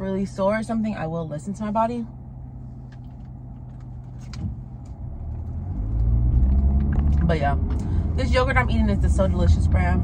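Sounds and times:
car engine hum from inside: 0:00.0 - 0:10.0.

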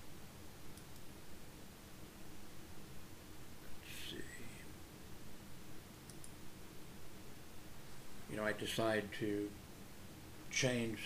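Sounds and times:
low steady room hum: 0:00.0 - 0:11.0
faint computer mouse clicks: 0:00.7 - 0:01.1, 0:06.0 - 0:06.4
breathy whisper-like vocal sound: 0:03.8 - 0:04.7.

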